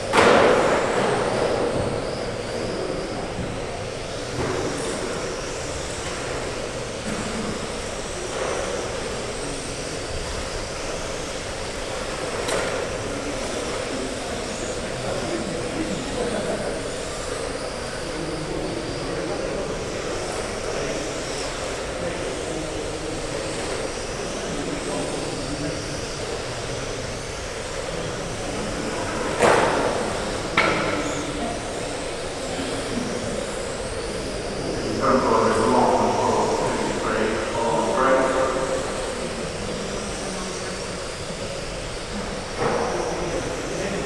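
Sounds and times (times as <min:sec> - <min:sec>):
high whine of electric motors: 0:00.0 - 0:44.0
steady background hum: 0:00.0 - 0:44.0.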